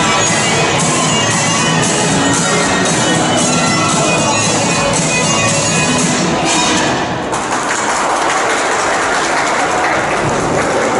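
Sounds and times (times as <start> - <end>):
music: 0.0 - 7.6
audience applauding: 7.3 - 10.9.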